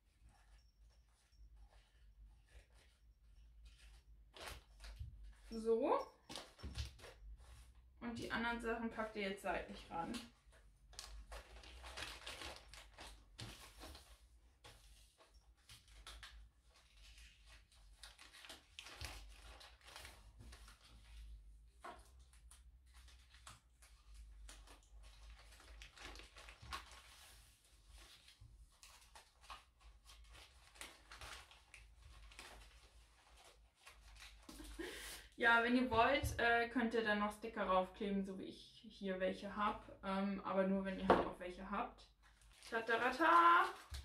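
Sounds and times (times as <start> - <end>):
paper rustling and crinkling: 0.0 - 7.9, 9.7 - 35.3, 42.2 - 44.0.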